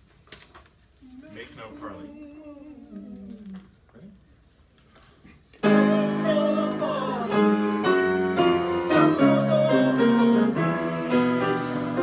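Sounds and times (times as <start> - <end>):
piano chords: 5.6 - 12.0
small choir singing: 5.6 - 12.0.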